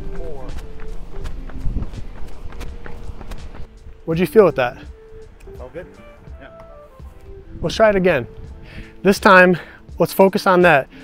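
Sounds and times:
wind rumble on microphone: 0.0s - 3.8s
running footsteps on asphalt: 0.0s - 5.6s.

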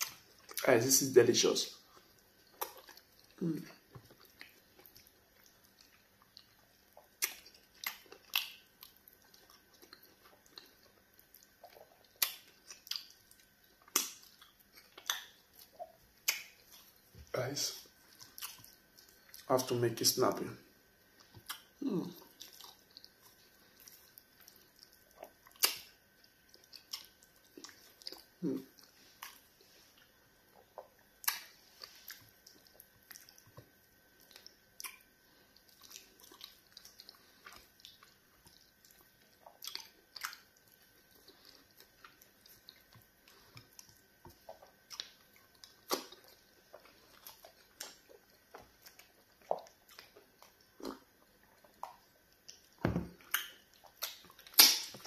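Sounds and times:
wet chewing smacks: 1.8s - 19.7s, 20.9s - 55.0s.

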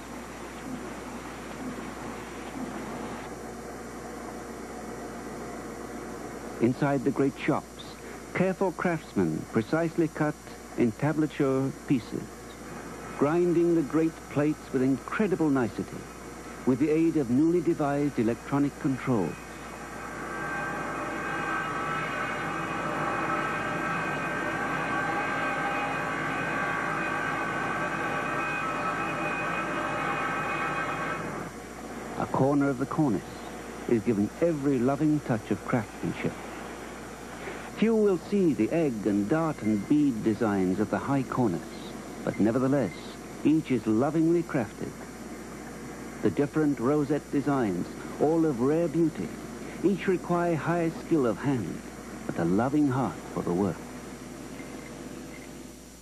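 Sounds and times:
stone-working machinery whining drone: 0.0s - 3.4s, 11.0s - 44.7s
water-cooled stone saw cutting: 18.5s - 31.5s.

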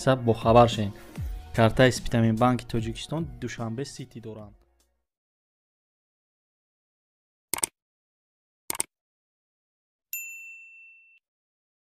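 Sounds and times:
notification bell ding: 10.2s - 11.2s.

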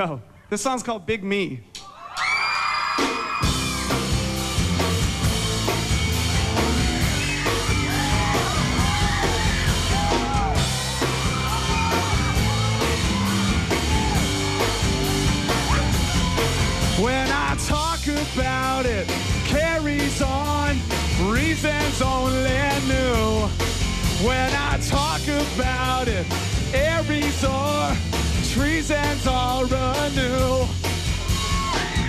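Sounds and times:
people yelling and whooping: 1.8s - 4.4s, 6.0s - 17.5s, 31.0s - 32.0s
live rock band playing: 3.3s - 32.0s.

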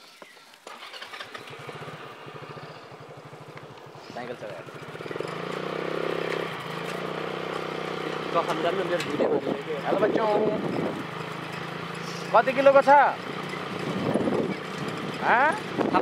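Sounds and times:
motorcycle engine running: 0.8s - 16.0s.

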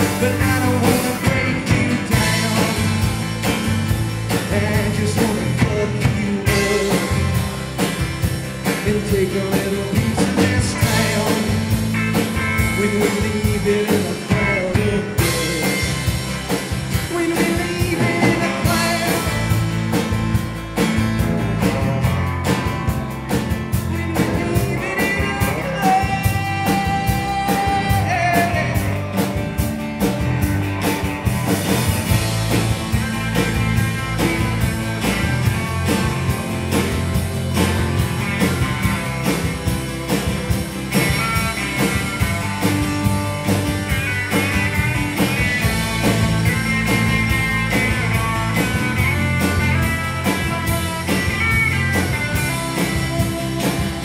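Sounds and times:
electric guitar melody: 0.0s - 54.0s
rock band playing: 0.0s - 54.0s.

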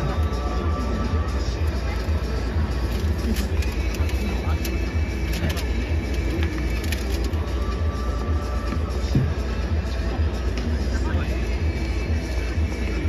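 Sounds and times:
crowd chatter: 0.0s - 13.0s
music over stadium speakers: 0.0s - 13.0s.

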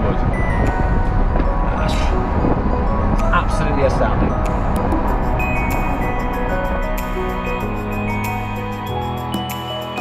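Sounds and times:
wind and road noise: 0.0s - 9.4s
background music: 0.0s - 10.0s.

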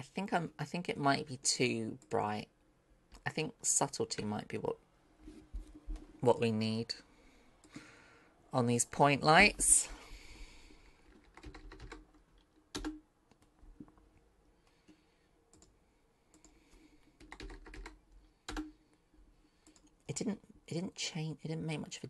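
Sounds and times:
typing on computer keyboard: 11.0s - 13.0s, 17.2s - 18.8s.

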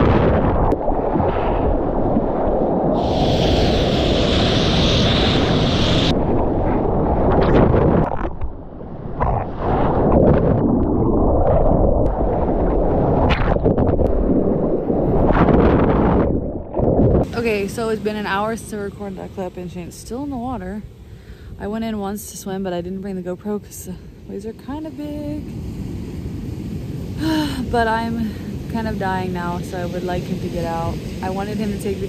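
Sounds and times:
wind buffeting microphone: 0.0s - 20.8s.

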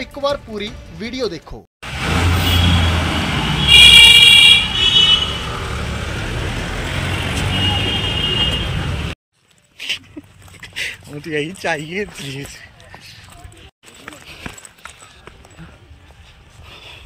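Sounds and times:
road traffic: 1.8s - 17.0s
vehicle horn honking: 2.4s - 3.0s, 3.6s - 5.4s, 7.1s - 8.9s.

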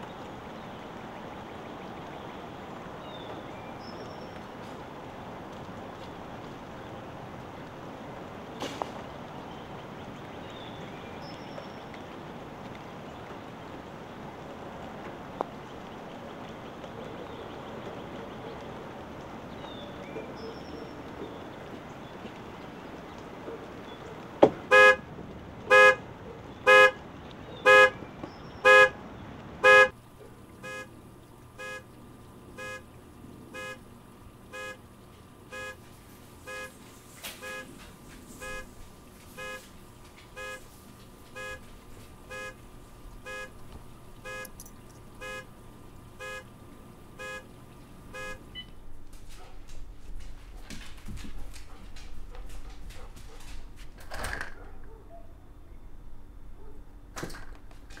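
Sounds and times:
car alarm horn blasts: 24.7s - 25.0s, 25.7s - 26.0s, 26.6s - 27.0s, 27.6s - 28.0s, 28.6s - 29.0s, 29.6s - 29.9s, 30.6s - 31.0s, 31.6s - 31.9s, 32.6s - 32.9s, 33.5s - 33.8s, 34.5s - 34.8s, 35.5s - 35.8s, 36.4s - 36.8s, 37.4s - 37.8s, 38.4s - 38.7s, 39.4s - 39.7s, 40.4s - 40.7s, 41.4s - 41.7s, 42.3s - 42.6s, 43.2s - 43.6s, 44.2s - 44.6s, 45.2s - 45.5s, 46.2s - 46.5s, 47.2s - 47.5s, 48.1s - 48.7s.

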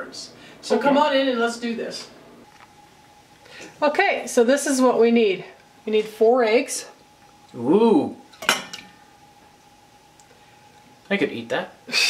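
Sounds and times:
dish clinking against metal bowl: 8.4s - 8.9s.

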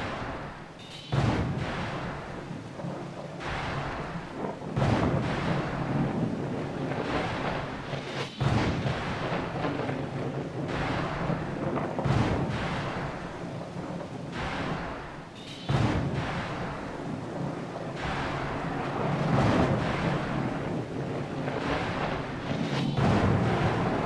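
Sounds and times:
deep boom: 0.0s - 24.0s
thunder-like rumbling soundtrack: 0.0s - 24.0s
low steady drone: 8.6s - 24.0s.

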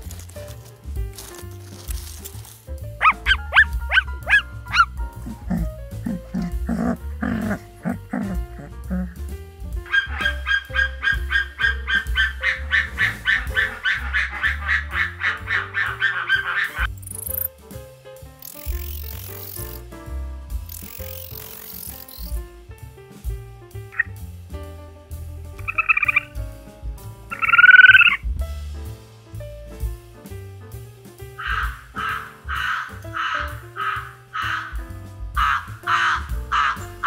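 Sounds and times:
background music: 0.0s - 37.0s
fast pulsing animal call: 3.0s - 9.2s, 9.9s - 17.5s, 25.6s - 26.4s, 27.3s - 28.2s, 31.4s - 34.8s, 35.4s - 37.0s
lower repeated animal calls: 9.9s - 16.9s, 25.6s - 26.3s, 27.3s - 28.2s, 31.4s - 34.8s, 35.4s - 37.0s
quick sweeping chirps: 27.3s - 28.2s.

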